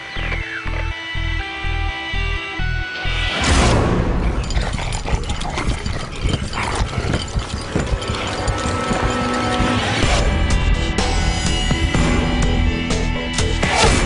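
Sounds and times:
pulsing drum beat: 0:04.6 - 0:13.6.

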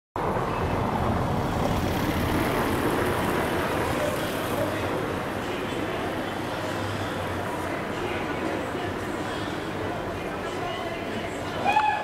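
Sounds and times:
city traffic rumble: 0:00.2 - 0:12.0.

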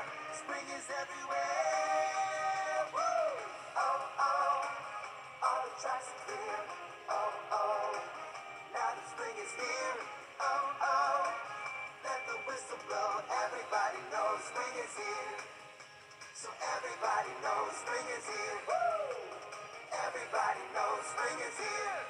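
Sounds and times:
person singing children's song: 0:00.0 - 0:15.7, 0:16.4 - 0:22.0
backing music from speakers: 0:00.0 - 0:22.0.

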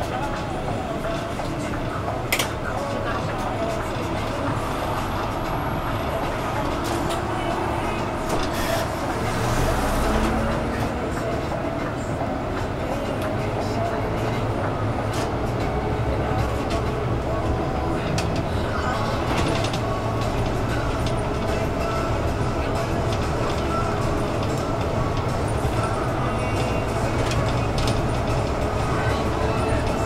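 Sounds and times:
bus engine and road rumble: 0:00.0 - 0:30.0
rattles and clicks: 0:18.0 - 0:30.0.

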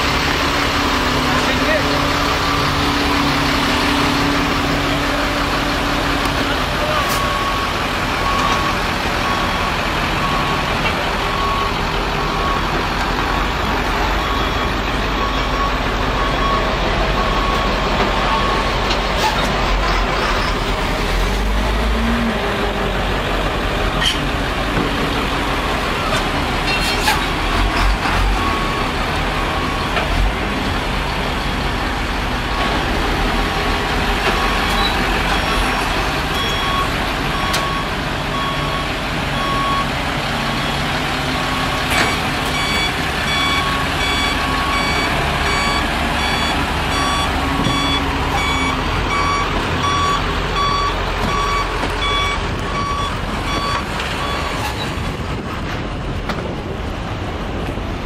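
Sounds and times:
traffic: 0:00.0 - 0:58.0
truck engines rumbling: 0:00.0 - 0:58.0
reversing beeper: 0:06.2 - 0:18.8, 0:40.5 - 0:54.8.

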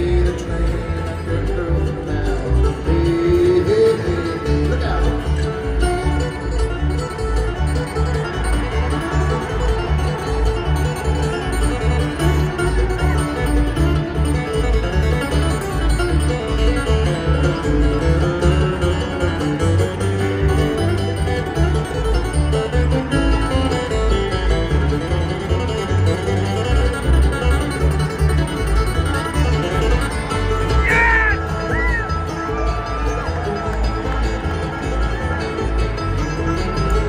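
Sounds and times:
acoustic guitars picking: 0:00.0 - 0:37.0
banjo picking: 0:00.0 - 0:37.0.

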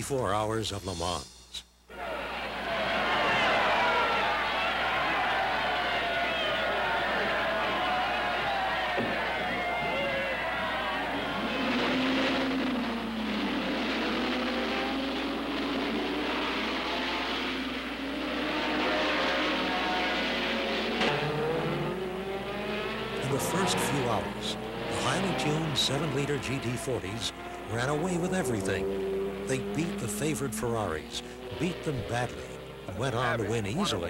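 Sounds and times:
racing car engines revving: 0:01.9 - 0:34.0.

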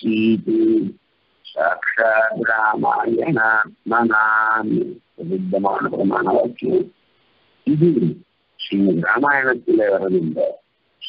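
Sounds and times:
man speaking in drawn-out tones: 0:00.0 - 0:06.9, 0:07.7 - 0:10.6.

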